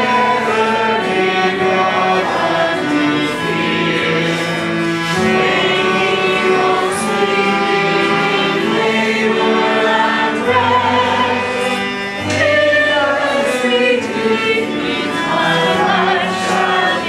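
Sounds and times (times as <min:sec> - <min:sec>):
choir singing sustained chords: 0:00.0 - 0:17.0.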